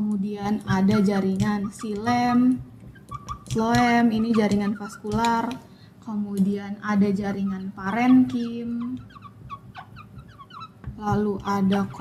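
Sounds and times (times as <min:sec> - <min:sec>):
marker squeaking on glass: 0:00.4 - 0:05.6, 0:07.2 - 0:12.0.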